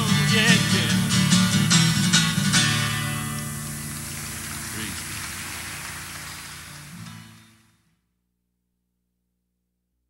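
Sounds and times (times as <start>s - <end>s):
acoustic guitar chord ringing: 0.0s - 8.0s
audience applauding: 3.0s - 7.8s.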